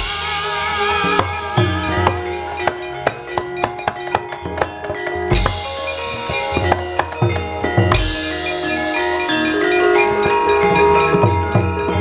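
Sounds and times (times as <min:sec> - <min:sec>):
ringing metallophone tones: 0:00.0 - 0:12.0
sharp percussive knocks: 0:01.0 - 0:12.0.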